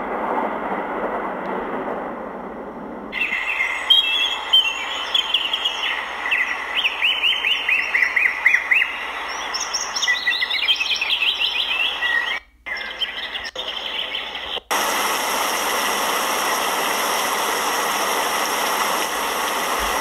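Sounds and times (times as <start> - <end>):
steady outdoor hiss: 0.0 - 20.0
small birds chirping: 3.2 - 14.8.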